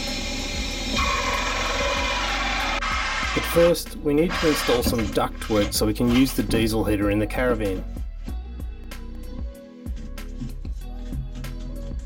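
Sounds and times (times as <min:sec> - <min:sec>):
power drill motor whining: 0:00.0 - 0:03.6.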